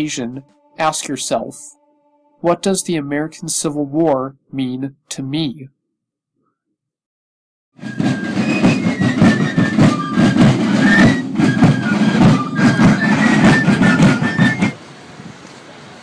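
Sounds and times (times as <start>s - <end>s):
faint fife tune: 0.0s - 4.8s, 8.0s - 14.8s
marching drum beat: 7.8s - 14.8s.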